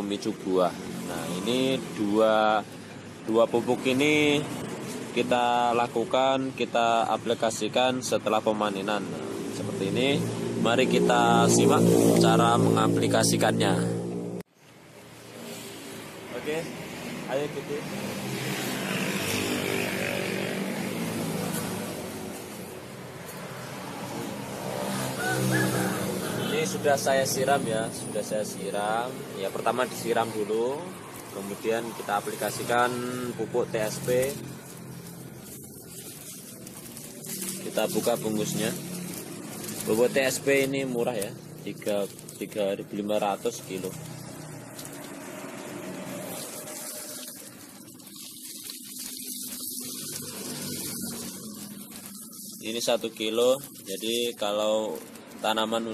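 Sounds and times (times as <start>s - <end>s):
granules pouring onto soil: 29.8s - 55.9s.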